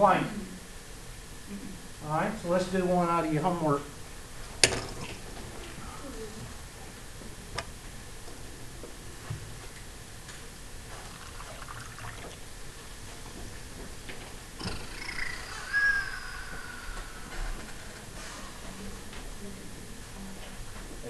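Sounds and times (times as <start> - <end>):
drawn-out high squeak: 14.6 - 18.0.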